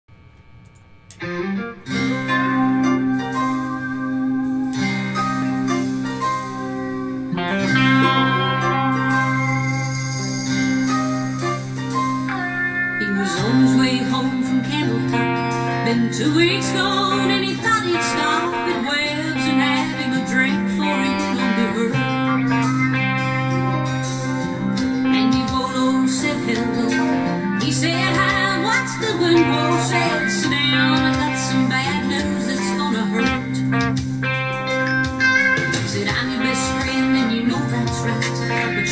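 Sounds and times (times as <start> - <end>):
electric guitar chord: 0.2 - 38.9
electric guitar picked notes: 0.2 - 38.9.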